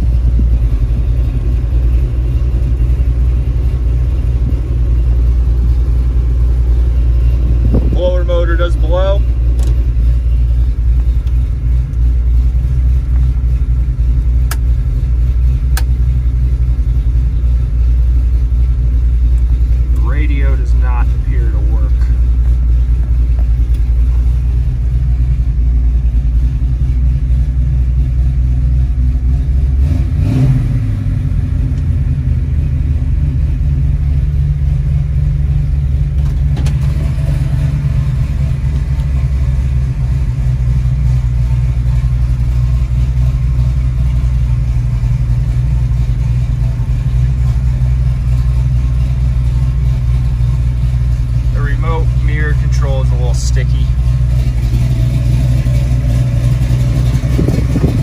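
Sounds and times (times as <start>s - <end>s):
car engine idling: 0.0s - 58.0s
click: 9.6s - 9.8s, 15.7s - 15.9s, 23.4s - 23.9s.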